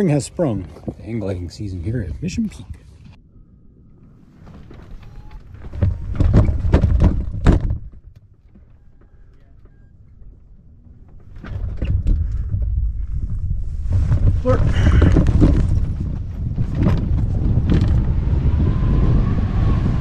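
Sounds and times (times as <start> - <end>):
wind gusting across microphone: 0.0 - 8.0, 10.0 - 20.0.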